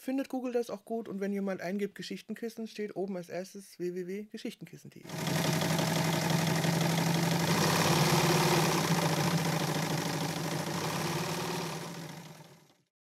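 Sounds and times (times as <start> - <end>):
needle stitching rapidly: 5.1 - 12.8
sewing machine running: 5.1 - 12.9.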